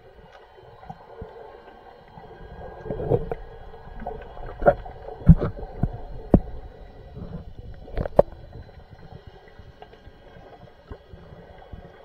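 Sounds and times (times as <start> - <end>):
low underwater rumble: 0.0 - 12.0
muffled underwater thumps: 4.5 - 6.6, 7.2 - 8.4.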